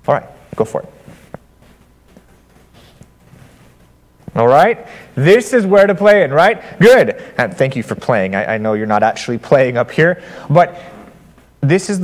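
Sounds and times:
footsteps on carpet: 0:00.4 - 0:04.4.

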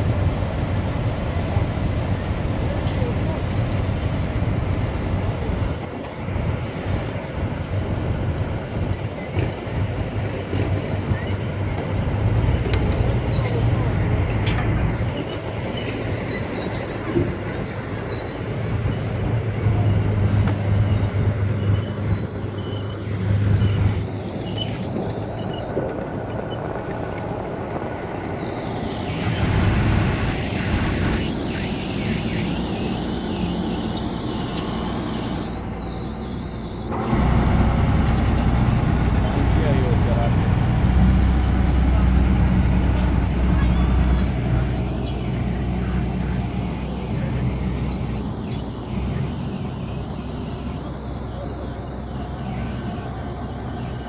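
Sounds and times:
armoured vehicle engine running: 0:00.0 - 0:54.0.

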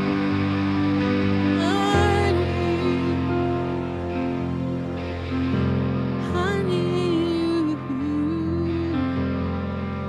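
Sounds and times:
held keyboard chords: 0:00.0 - 0:10.0
woman singing: 0:01.5 - 0:03.9, 0:06.2 - 0:09.4.

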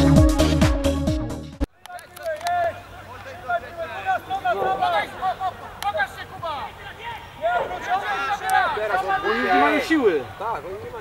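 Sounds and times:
voices calling out: 0:01.7 - 0:11.0.

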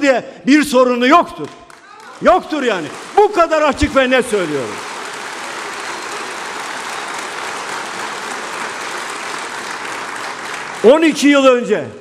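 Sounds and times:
audience applauding: 0:01.4 - 0:11.5.

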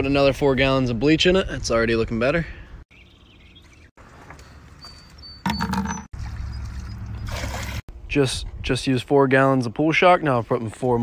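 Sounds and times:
liquid pouring and splashing into water: 0:06.1 - 0:07.8.

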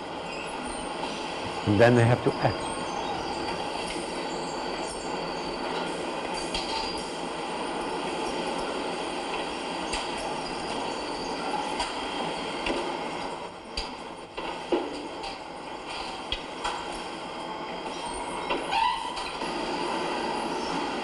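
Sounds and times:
machinery clatter: 0:00.0 - 0:21.0.

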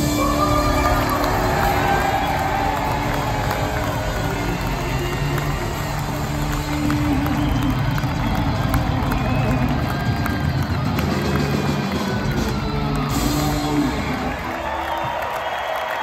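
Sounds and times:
live rock band: 0:00.0 - 0:15.2
crowd cheering: 0:00.0 - 0:16.0.

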